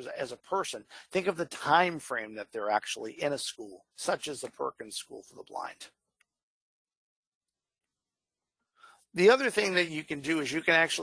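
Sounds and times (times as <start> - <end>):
faint breath: 0.8 - 1.2, 8.7 - 9.1.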